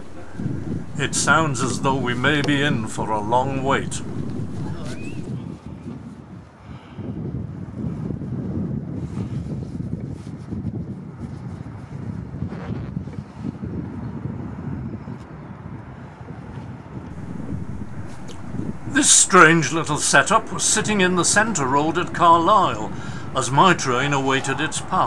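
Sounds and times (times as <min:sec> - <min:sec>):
wind buffeting microphone: 0:00.0 - 0:05.8, 0:17.1 - 0:25.0.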